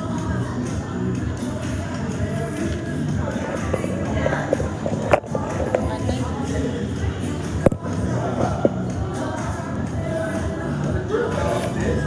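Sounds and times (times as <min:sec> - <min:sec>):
background music: 0:00.0 - 0:12.0
people's voices: 0:00.0 - 0:12.0.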